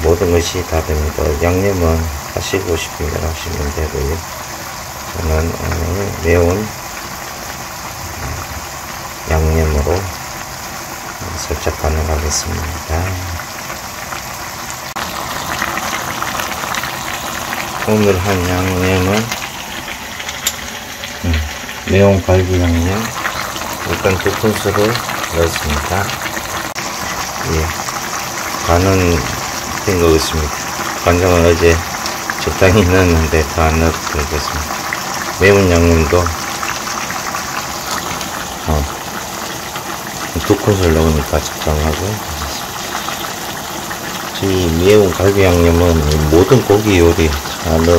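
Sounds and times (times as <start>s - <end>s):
food simmering in a frying pan: 0.0s - 47.9s.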